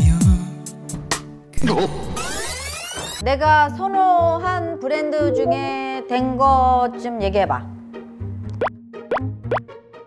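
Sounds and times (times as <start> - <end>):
light background music: 0.0 - 10.0
rising bloop sound effects: 1.6 - 3.2.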